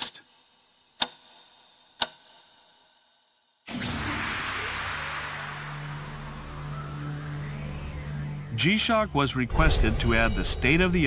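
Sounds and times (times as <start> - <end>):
noisy whoosh: 3.7 - 7.3
low drone: 3.7 - 11.0.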